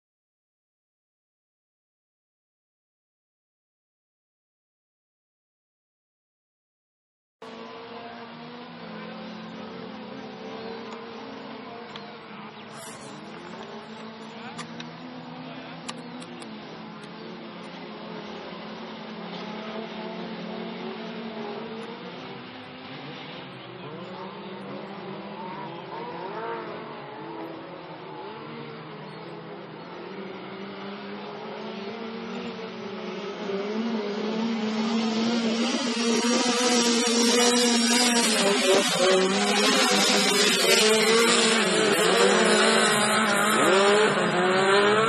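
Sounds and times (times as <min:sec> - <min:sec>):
racing car engines revving: 0:07.4 - 0:45.0.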